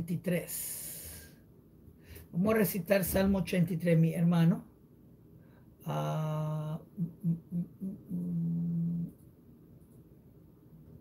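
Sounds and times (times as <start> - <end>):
man humming: 5.8 - 9.1.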